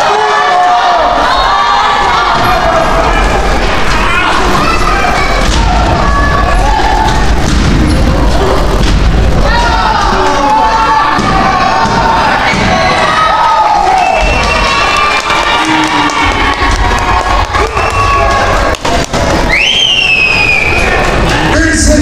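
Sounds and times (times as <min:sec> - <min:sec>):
children's voices: 0:00.0 - 0:07.3
crowd cheering and shouting: 0:00.0 - 0:22.0.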